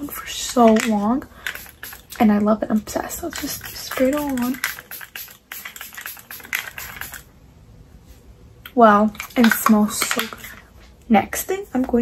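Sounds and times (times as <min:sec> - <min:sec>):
mist bottle spraying: 0:01.5 - 0:02.2, 0:03.2 - 0:07.3.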